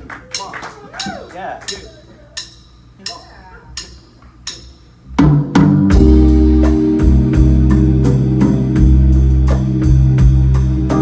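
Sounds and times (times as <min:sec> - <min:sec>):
drum and percussion strikes: 0:00.3 - 0:11.0
live band playing: 0:05.1 - 0:11.0
organ chord: 0:05.1 - 0:11.0.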